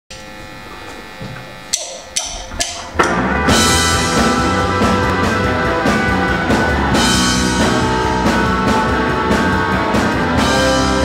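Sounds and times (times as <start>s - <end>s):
held guitar chord ringing: 0.1s - 11.0s
rock band playing: 2.3s - 11.0s
loud band hits: 2.5s - 11.0s.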